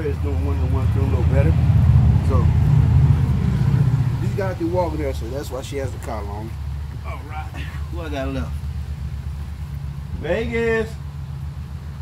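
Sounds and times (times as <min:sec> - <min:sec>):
loud low rumble: 0:00.0 - 0:12.0.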